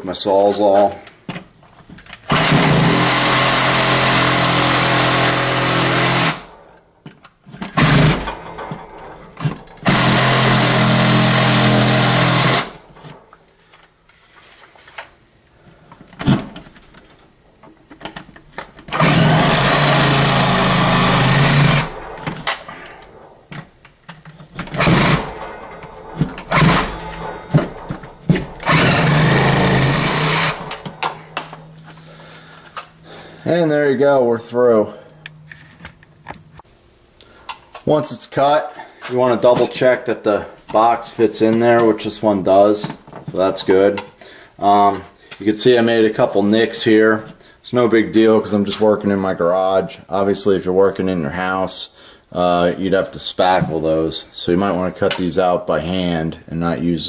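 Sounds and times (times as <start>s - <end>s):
reciprocating saw cutting drywall: 2.3s - 6.6s, 7.8s - 9.1s, 9.8s - 12.8s, 18.9s - 23.3s, 24.5s - 31.3s.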